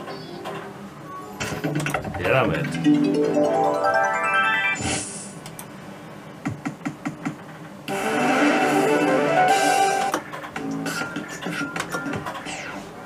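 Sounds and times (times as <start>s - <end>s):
slot machine clicks: 1.8s - 4.8s
electronic jingle: 2.8s - 5.1s.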